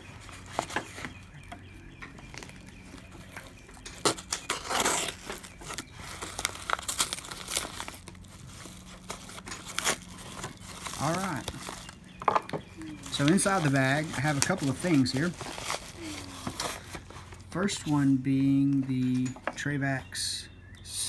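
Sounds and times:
paper crinkling and tearing: 2.2 - 12.0, 12.8 - 18.0
knife slitting envelope: 2.3 - 12.0.

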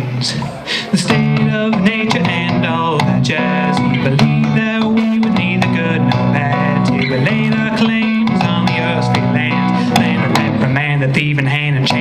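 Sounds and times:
electric guitar notes and chords: 0.0 - 12.0.

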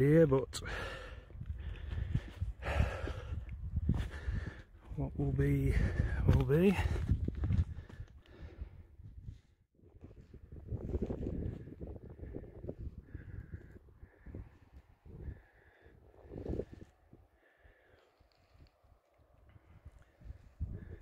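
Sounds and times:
wind buffeting microphone: 0.7 - 17.3, 18.5 - 21.0.

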